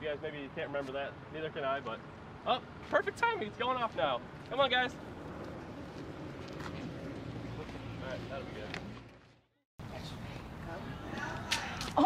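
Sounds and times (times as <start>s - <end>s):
low street hum: 0.0s - 12.0s.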